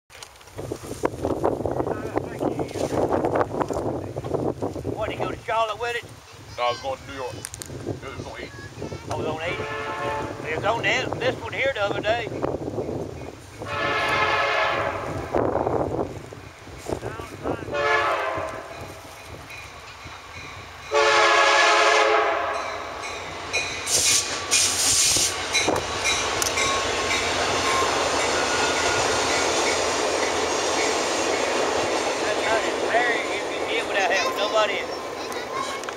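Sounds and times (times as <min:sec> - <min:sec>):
train rumbling past: 0:00.8 - 0:35.9
train air horn blasts: 0:09.4 - 0:10.5, 0:13.6 - 0:15.4, 0:17.7 - 0:18.9, 0:20.9 - 0:22.9
wheels clacking over rail joints: 0:23.0 - 0:35.9.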